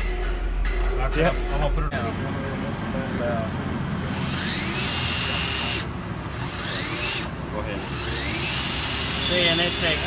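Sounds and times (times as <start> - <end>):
torque wrench motor whining: 3.9 - 10.0.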